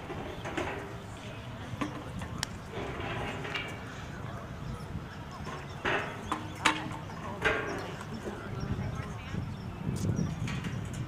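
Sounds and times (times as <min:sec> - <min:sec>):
faint background voices: 0:00.0 - 0:11.0
outdoor ambience: 0:00.0 - 0:11.0.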